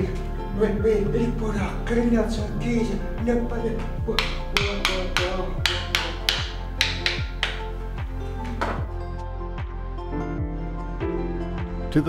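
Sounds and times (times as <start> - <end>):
frame drum beaten with stick: 4.1 - 7.7.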